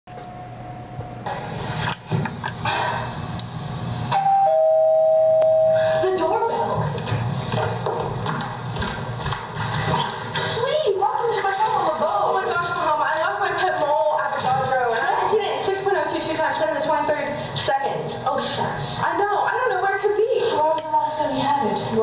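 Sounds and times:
two-tone doorbell chime: 4.1 - 6.0.

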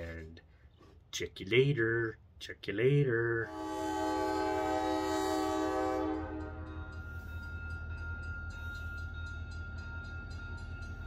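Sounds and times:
locomotive air horn blasting: 3.4 - 6.8.

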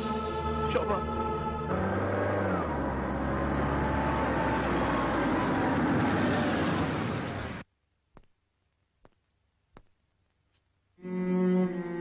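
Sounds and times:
held music chord: 0.0 - 3.0.

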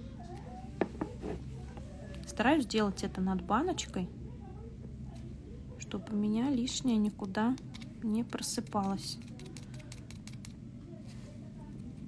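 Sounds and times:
low room hum: 0.0 - 12.0
plastic spatula tapping: 8.7 - 10.6.

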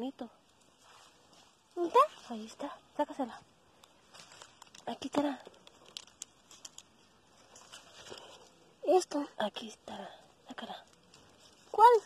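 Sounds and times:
leaves rustling: 0.0 - 12.0
small clicks: 3.8 - 7.8.

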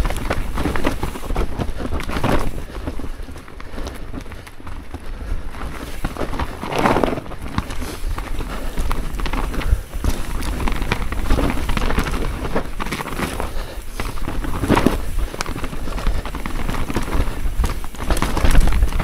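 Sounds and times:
bike rattling and clicking: 0.0 - 19.0
bike tyres rolling on dirt: 0.0 - 19.0.

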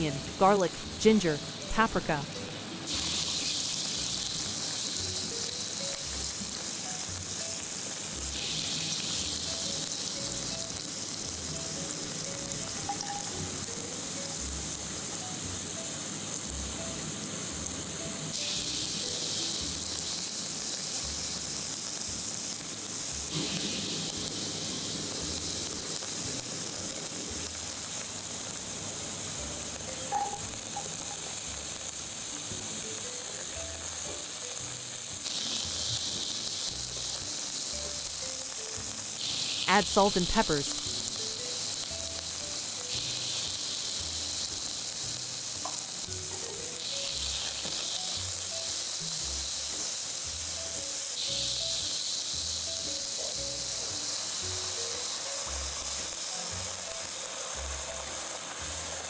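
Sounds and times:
vegetables sizzling in hot oil: 0.0 - 59.0.

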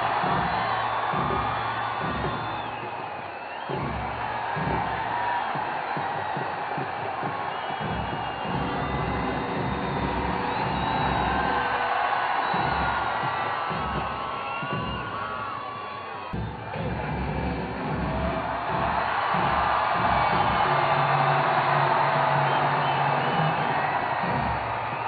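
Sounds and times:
crowd cheering and whooping: 0.0 - 25.0
music playing: 16.4 - 24.8.

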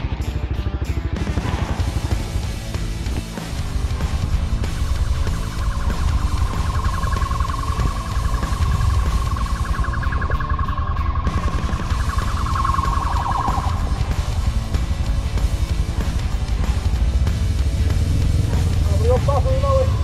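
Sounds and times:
heavy metal music: 0.0 - 20.0
police siren pulsing: 3.8 - 14.9.

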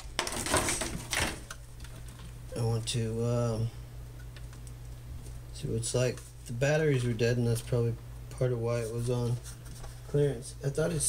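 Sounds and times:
hard plastic clicking and rustling: 0.0 - 2.4.

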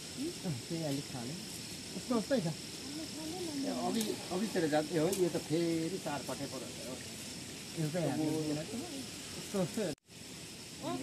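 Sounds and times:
people talking: 0.2 - 1.4, 2.0 - 7.0, 7.8 - 10.0, 10.8 - 11.0.

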